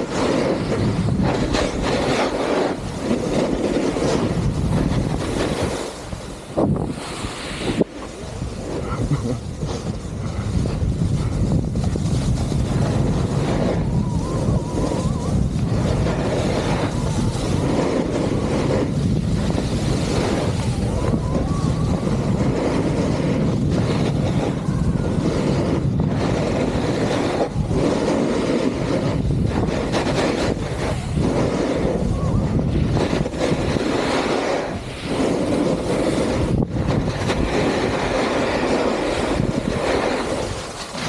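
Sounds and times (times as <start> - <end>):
skis scraping over snow: 0.0 - 41.0
wind buffeting microphone: 0.0 - 41.0.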